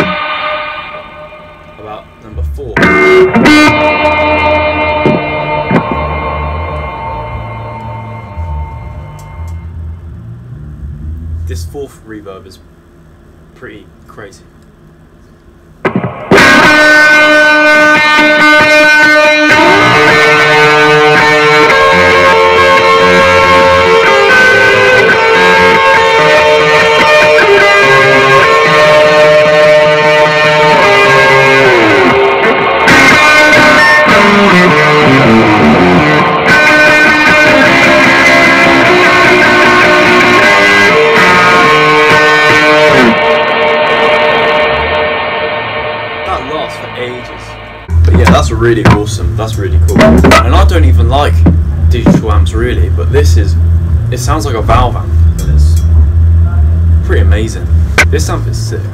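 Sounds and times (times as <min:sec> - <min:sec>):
electric guitar with heavy reverb: 0:00.0 - 0:13.5, 0:14.8 - 0:58.9.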